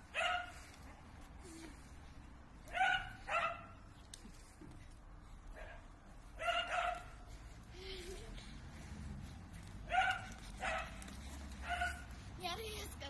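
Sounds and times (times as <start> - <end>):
dog barking: 0.1 - 0.6, 2.7 - 3.8, 5.6 - 5.8, 6.4 - 7.2, 9.9 - 11.0, 11.6 - 12.1.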